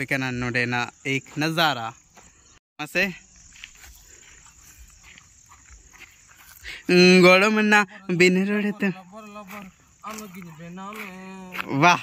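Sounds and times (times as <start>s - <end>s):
insects chirring: 0.0s - 12.0s
man's voice: 6.7s - 12.0s.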